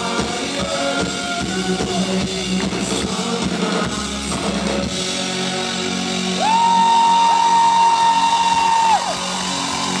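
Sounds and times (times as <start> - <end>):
live rock band ring-out: 0.0 - 10.0
audience member whooping: 6.4 - 10.0.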